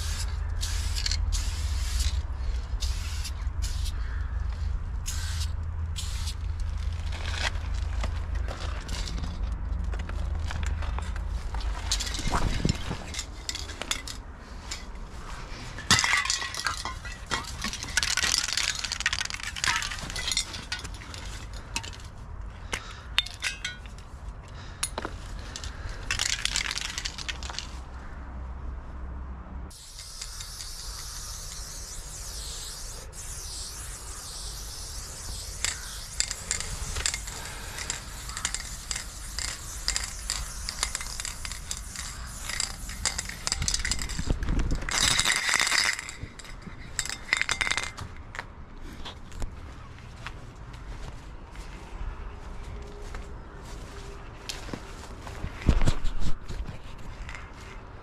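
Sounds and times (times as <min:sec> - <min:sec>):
spray paint can hissing: 0:00.0 - 0:04.0, 0:04.6 - 0:07.4, 0:16.2 - 0:20.5, 0:29.7 - 0:47.9
metallic clinks and rattles: 0:10.4 - 0:15.0, 0:15.8 - 0:22.2, 0:22.8 - 0:24.1, 0:24.8 - 0:27.8, 0:34.6 - 0:48.4.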